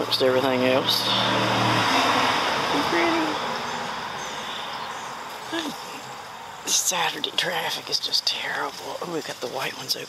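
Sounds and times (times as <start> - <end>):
vehicle passing: 0.0 - 6.9.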